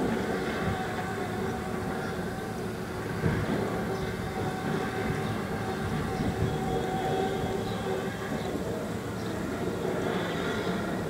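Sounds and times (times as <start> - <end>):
low mechanical rumble: 0.0 - 11.0.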